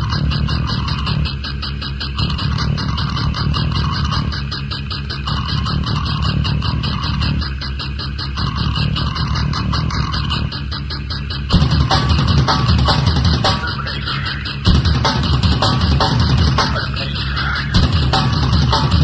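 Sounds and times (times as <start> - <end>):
distorted guitar: 0.0 - 19.0.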